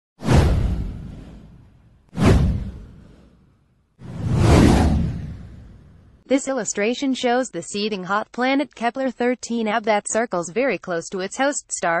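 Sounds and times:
deep whoosh sound effects: 0.2 - 6.2.

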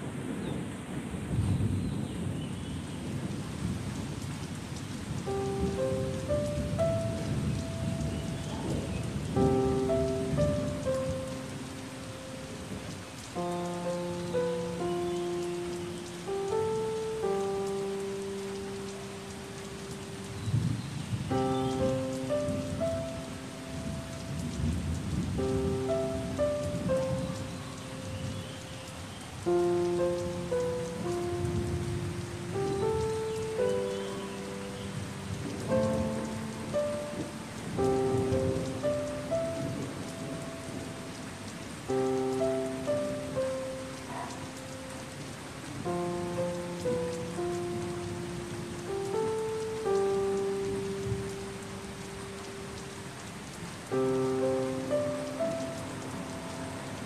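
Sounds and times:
soft piano melody: 0.0 - 57.0
steady rain: 0.0 - 57.0.

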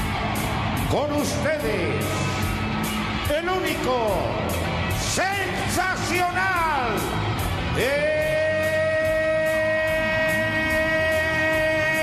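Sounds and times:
rock music with beat: 0.0 - 12.0.

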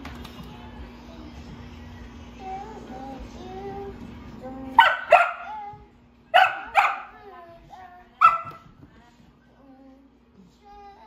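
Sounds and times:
puppy barking: 4.8 - 5.6, 6.3 - 7.2, 8.2 - 8.7.

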